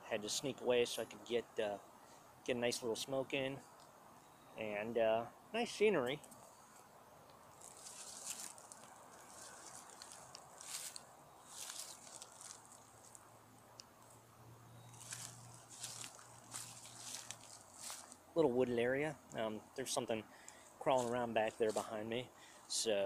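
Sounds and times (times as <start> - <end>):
distant road traffic hum: 0.0 - 23.0
soft rustling hisses: 0.2 - 4.3, 5.5 - 23.0.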